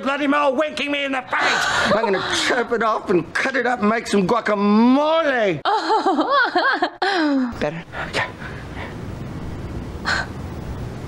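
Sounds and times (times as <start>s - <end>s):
low steady rumble: 8.2s - 11.0s.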